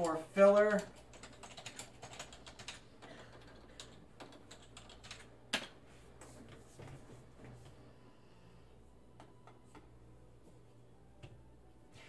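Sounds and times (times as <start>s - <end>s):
faint keyboard typing: 0.0s - 6.6s, 9.1s - 10.0s.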